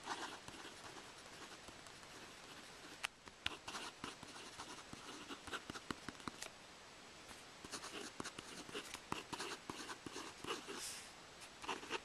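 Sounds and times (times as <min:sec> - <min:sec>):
marker pen scratching on paper: 0:00.0 - 0:06.5, 0:07.6 - 0:11.0, 0:11.6 - 0:12.0.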